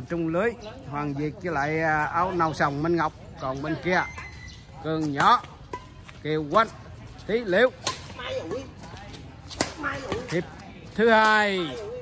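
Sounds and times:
racket striking shuttlecock: 7.8 - 8.2, 9.4 - 10.4.

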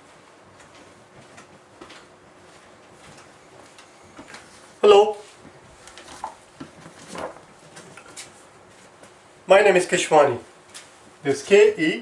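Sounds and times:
man saying hello: 4.8 - 5.3.

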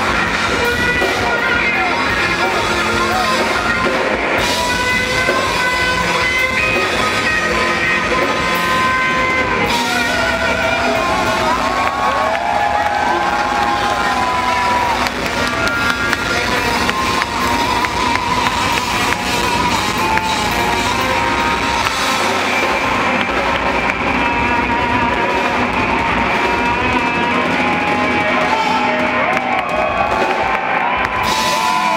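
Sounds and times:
crowd cheering: 0.0 - 31.9
live rock band playing: 0.0 - 31.9.

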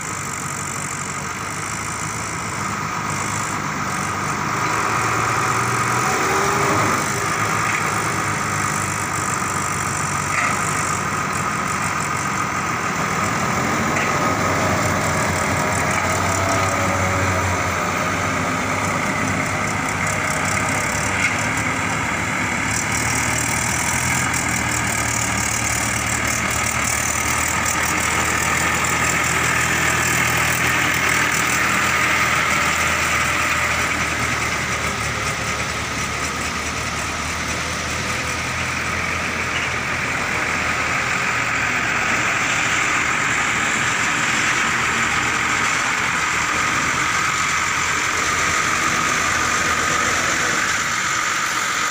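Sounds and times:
diesel tractor engine under load: 0.0 - 51.9
truck diesel engine running: 0.0 - 51.9.

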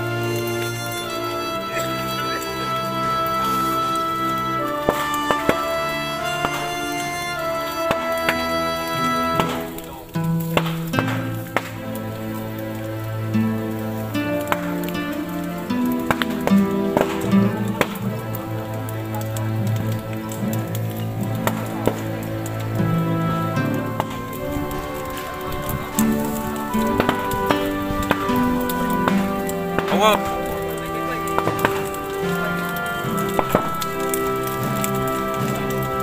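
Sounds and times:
music with held notes: 0.0 - 36.0.

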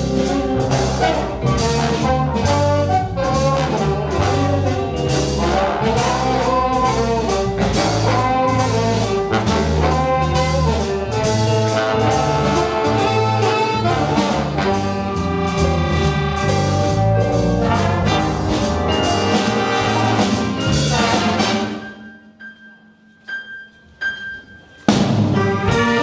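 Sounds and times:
trombones and trumpets: 0.0 - 22.1, 24.9 - 26.0
jazz big band playing: 0.0 - 22.4, 24.6 - 26.0.

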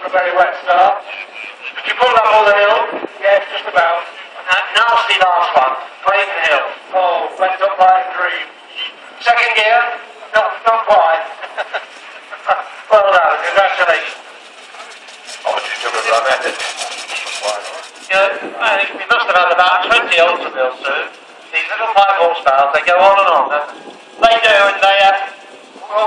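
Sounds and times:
man talking: 0.0 - 1.2, 1.8 - 11.4, 12.4 - 14.2, 15.4 - 26.0.

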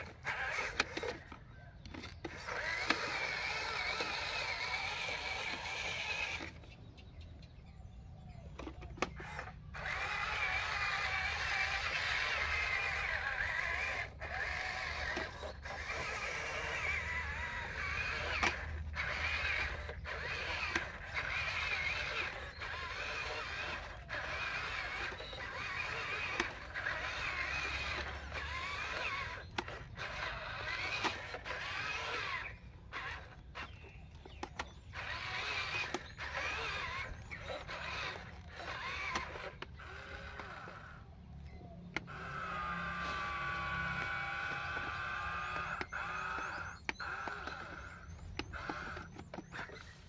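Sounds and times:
toy electric motors whining: 0.0 - 50.0.

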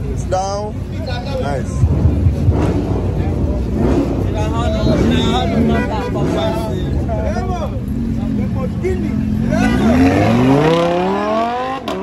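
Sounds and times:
many voices talking: 0.0 - 11.7
car engine running at low revs: 0.0 - 12.0.

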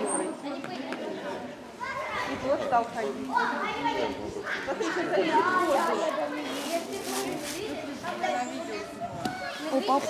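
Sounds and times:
people talking and chattering: 0.0 - 10.0.

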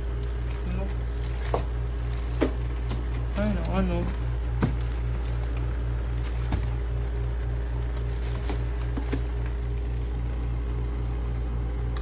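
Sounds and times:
low mechanical hum pulsing: 0.0 - 12.0.

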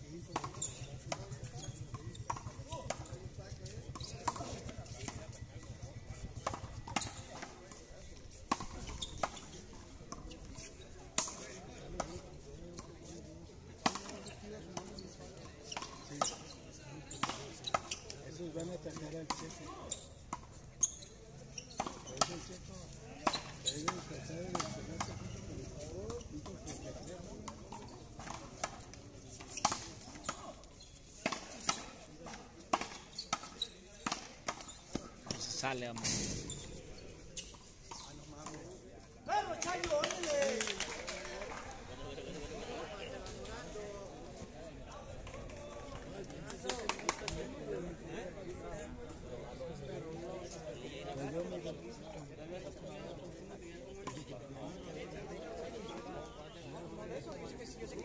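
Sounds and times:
people's voices: 0.1 - 58.0.

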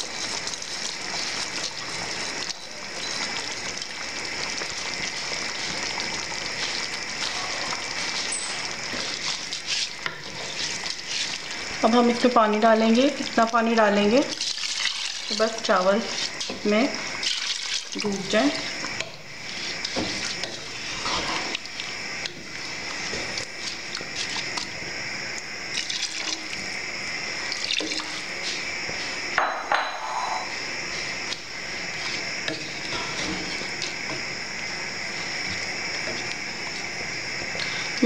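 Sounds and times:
water pouring into a pot: 0.0 - 24.8, 25.6 - 28.4.

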